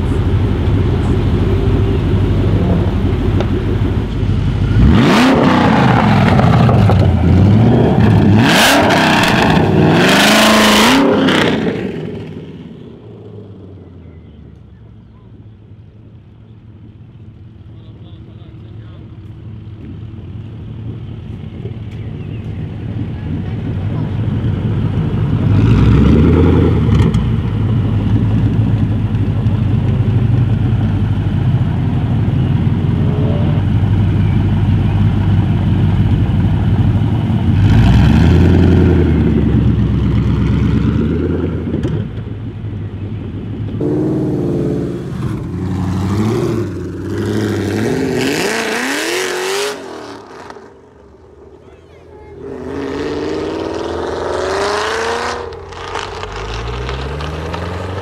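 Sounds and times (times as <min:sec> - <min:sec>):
car engine idling and revving: 0:00.0 - 0:58.0.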